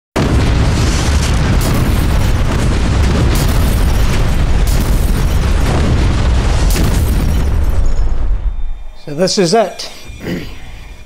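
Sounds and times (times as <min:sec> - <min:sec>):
explosions rumbling: 0:00.2 - 0:10.3
crackling surges: 0:00.2 - 0:11.0.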